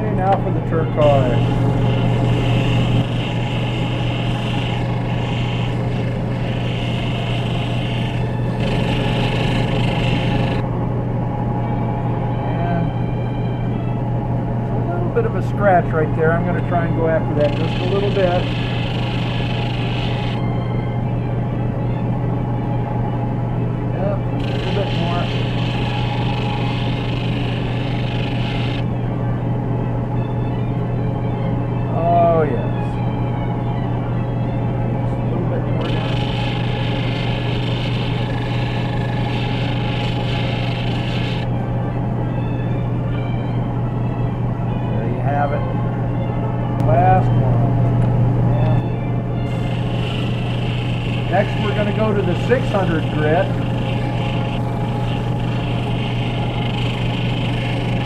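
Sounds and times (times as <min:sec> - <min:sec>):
sander motor humming: 0:00.0 - 0:10.6, 0:17.3 - 0:20.4, 0:24.4 - 0:28.9, 0:35.3 - 0:41.5, 0:49.5 - 0:58.0
stone hissing on sandpaper: 0:49.6 - 0:52.0.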